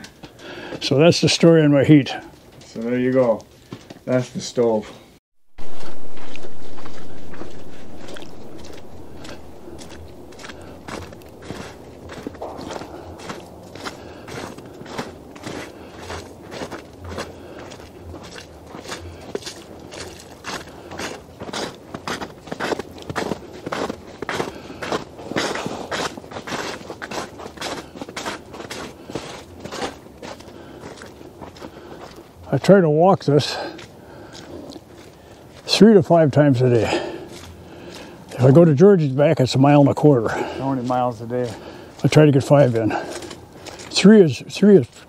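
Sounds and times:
loud rush of noise: 0:05.6 - 0:15.8
footsteps in snow: 0:05.6 - 0:32.4, 0:40.3 - 0:45.0.

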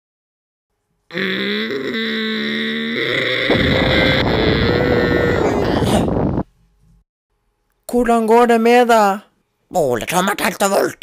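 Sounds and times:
loud held straining tone: 0:01.1 - 0:06.5.

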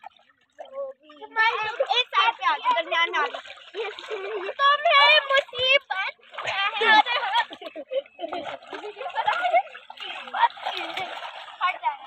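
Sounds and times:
water sloshing in paddling pool: 0:00.0 - 0:12.0.

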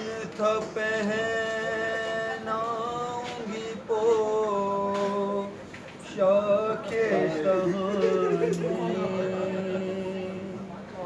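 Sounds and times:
man singing long note: 0:06.2 - 0:10.8.

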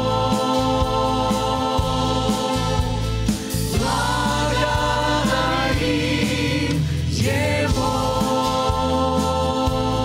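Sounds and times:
church choir singing: 0:00.0 - 0:10.0.

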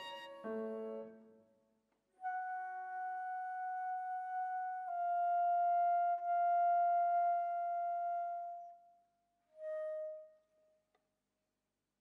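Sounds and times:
chamber music for flute violin piano: 0:00.0 - 0:01.3.

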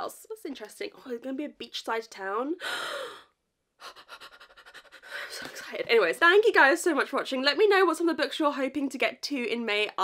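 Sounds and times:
woman gasping: 0:02.6 - 0:05.7.

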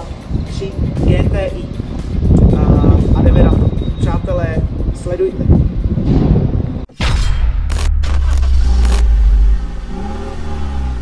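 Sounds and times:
deep steady rumble: 0:04.6 - 0:11.0.

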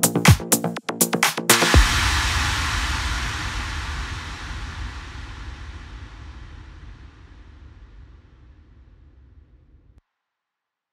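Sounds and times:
techno beat: 0:00.0 - 0:02.5.

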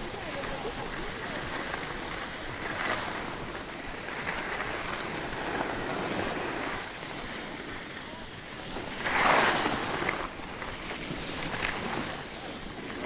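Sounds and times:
skis scraping over snow: 0:00.0 - 0:13.0.

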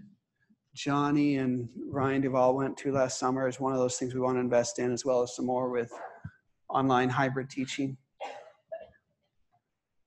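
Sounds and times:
throat clearing: 0:08.2 - 0:09.0.

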